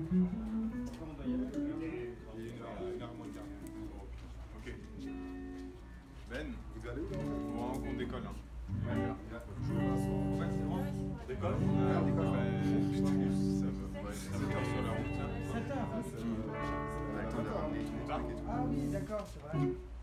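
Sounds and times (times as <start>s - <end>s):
guitar plucked and strummed: 0.0s - 3.8s, 7.0s - 20.0s
people talking: 0.7s - 19.8s.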